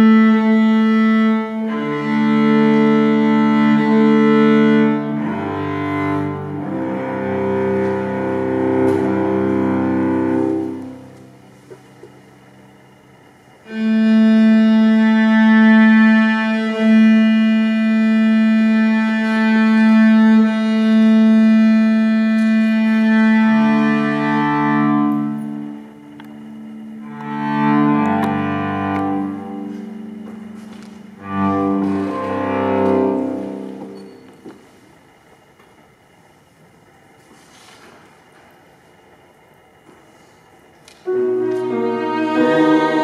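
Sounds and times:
cello duet: 0:00.0 - 0:12.7, 0:13.4 - 0:35.5, 0:39.8 - 0:43.0.

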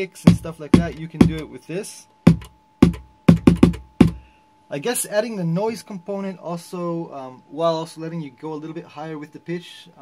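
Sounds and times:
synthesizer kick drum with hiss: 0:00.0 - 0:01.6, 0:02.2 - 0:04.3.

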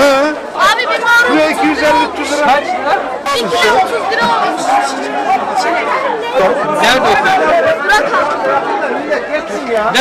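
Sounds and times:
crowd chatter: 0:00.0 - 0:10.0
man and girl talking: 0:00.6 - 0:08.8.

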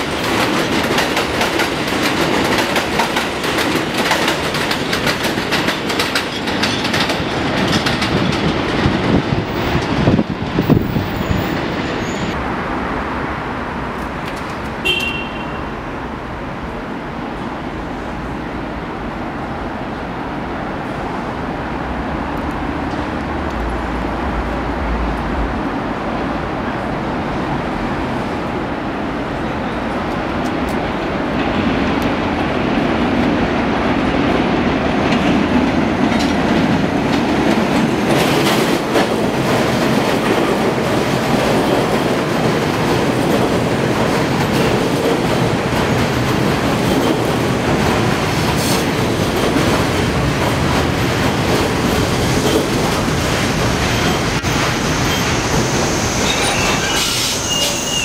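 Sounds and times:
rail joint clicks: 0:00.0 - 0:12.4, 0:13.9 - 0:15.2, 0:22.3 - 0:25.4, 0:29.9 - 0:58.0
train wheels rumbling on rail: 0:00.0 - 0:58.0
train brakes squealing: 0:11.2 - 0:12.4, 0:53.8 - 0:58.0.

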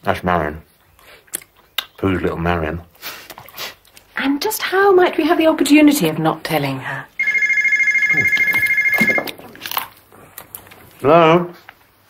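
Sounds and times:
electronic telephone ringer trill: 0:07.2 - 0:09.4.

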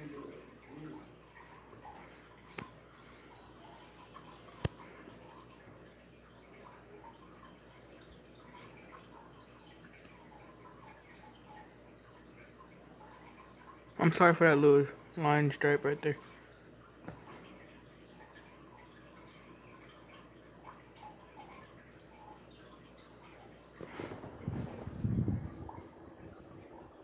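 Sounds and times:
ceiling fan running: 0:00.0 - 0:27.0.

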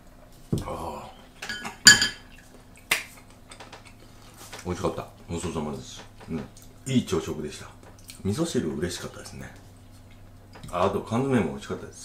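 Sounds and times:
tableware clinking on ceramic: 0:01.4 - 0:02.3.

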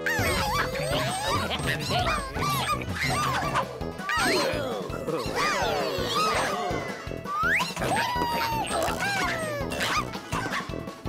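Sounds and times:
squeaky cartoon character chatter: 0:00.0 - 0:10.7
cartoon background music: 0:00.0 - 0:11.0.

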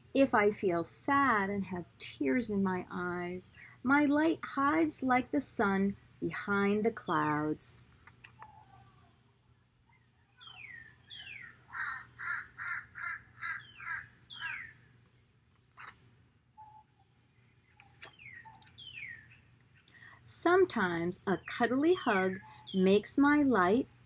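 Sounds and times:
bird calling: 0:10.4 - 0:14.8.

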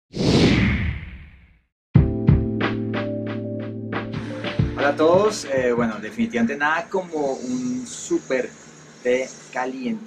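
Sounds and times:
music with hit: 0:02.0 - 0:06.4.

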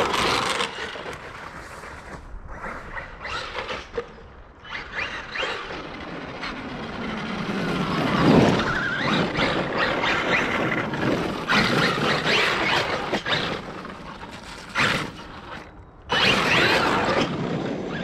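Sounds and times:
tyre noise on wet pavement: 0:00.0 - 0:03.4.

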